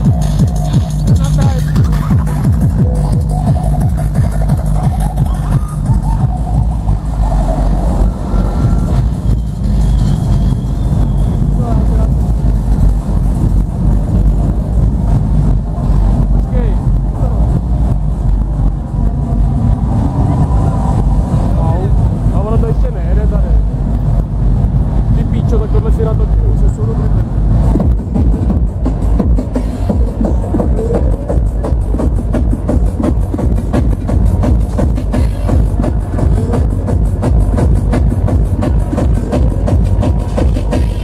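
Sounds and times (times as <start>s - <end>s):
crowd voices talking: 0.0s - 41.0s
electronic dance music deep bass: 0.0s - 41.0s.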